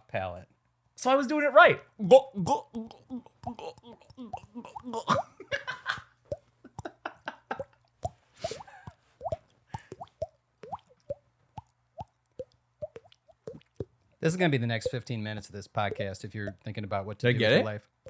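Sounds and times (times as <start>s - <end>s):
mouth-made water-drop plops: 7.5s - 14.0s.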